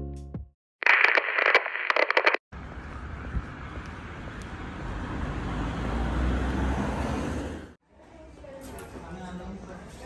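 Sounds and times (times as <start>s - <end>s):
street traffic noise: 2.5s - 10.0s
passing car rumble: 2.6s - 7.8s.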